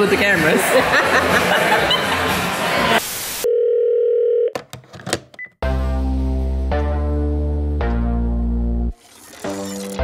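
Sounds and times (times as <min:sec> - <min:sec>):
table chatter and laughter: 0:00.5 - 0:03.0.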